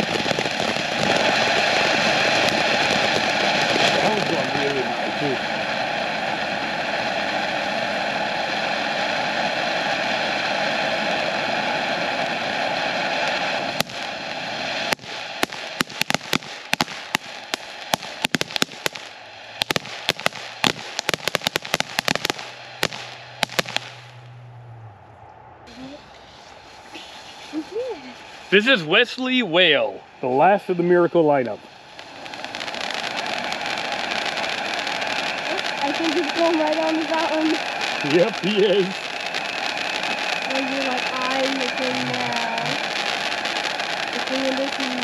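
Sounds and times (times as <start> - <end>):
firework pops and crackles: 0.0 - 9.2, 11.6 - 24.2, 31.4 - 45.0
firework fountain hissing: 0.0 - 24.3, 25.7 - 45.0.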